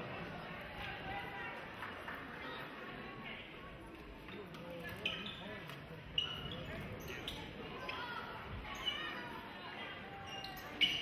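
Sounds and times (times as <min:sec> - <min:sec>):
voices in a hall: 0:00.0 - 0:11.0
sneakers squeaking: 0:04.3 - 0:09.4, 0:10.0 - 0:11.0.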